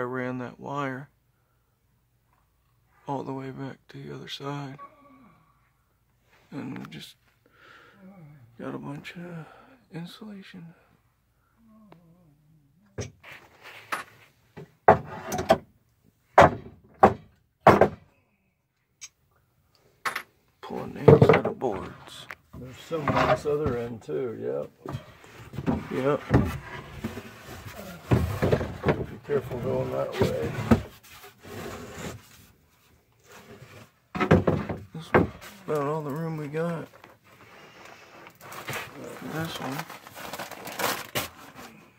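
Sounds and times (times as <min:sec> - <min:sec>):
lumber boards knocking and clattering: 0:14.6 - 0:15.7, 0:16.4 - 0:18.1, 0:21.0 - 0:21.6, 0:28.1 - 0:29.2, 0:34.1 - 0:35.4
heavy knocks on wooden boards: 0:16.4 - 0:18.0, 0:34.2 - 0:35.4.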